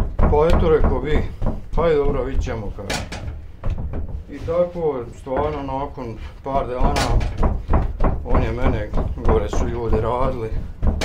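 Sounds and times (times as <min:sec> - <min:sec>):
man talking: 0:00.2 - 0:03.1, 0:04.3 - 0:07.4, 0:08.2 - 0:10.7.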